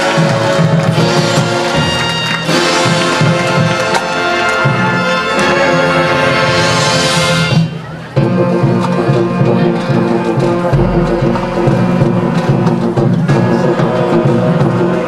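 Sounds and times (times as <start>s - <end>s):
marching band playing: 0.0s - 6.6s, 8.2s - 13.5s.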